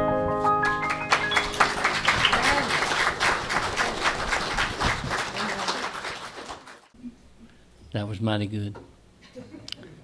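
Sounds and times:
congregation applauding: 0.6s - 7.0s.

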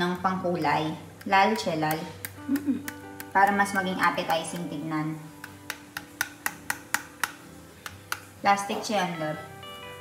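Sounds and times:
soft background music: 0.0s - 10.0s
spoon tapping plastic container: 5.4s - 8.3s.

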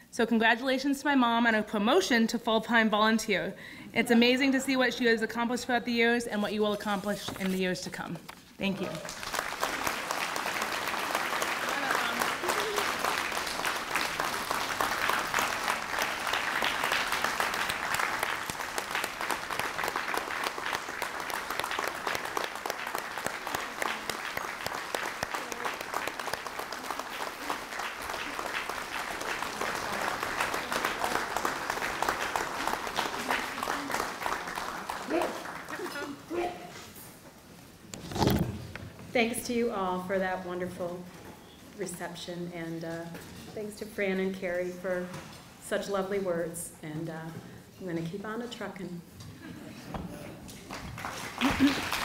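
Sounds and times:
audience applauding: 8.8s - 36.4s, 50.5s - 52.0s.

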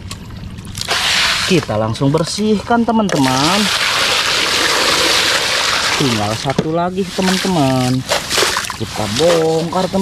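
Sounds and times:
water splashing over plastic toy: 3.1s - 6.5s, 7.2s - 10.0s.

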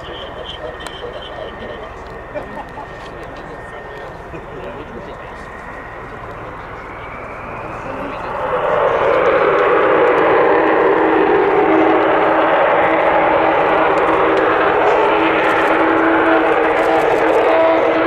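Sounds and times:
jet taking off: 0.0s - 18.0s
low steady drone: 0.0s - 18.0s.

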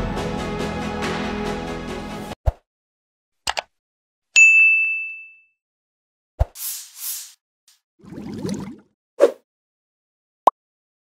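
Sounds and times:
bright bell ding: 4.4s - 5.5s.

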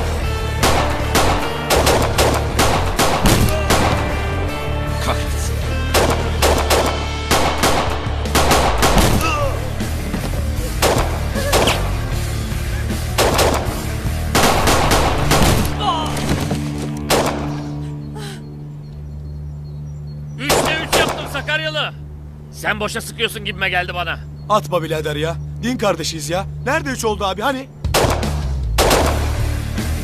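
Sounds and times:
low music bed: 0.0s - 30.0s
gunshot volleys: 0.6s - 4.2s, 5.9s - 9.4s, 10.8s - 11.9s, 13.2s - 15.8s, 17.1s - 17.6s, 27.9s - 29.4s.

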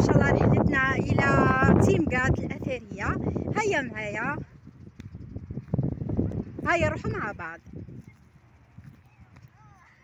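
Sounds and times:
footsteps on stony ground: 4.4s - 10.0s.

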